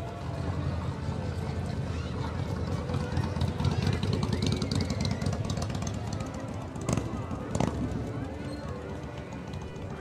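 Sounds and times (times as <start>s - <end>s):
crowd voices: 0.0s - 10.0s
truck engine running low: 0.0s - 10.0s.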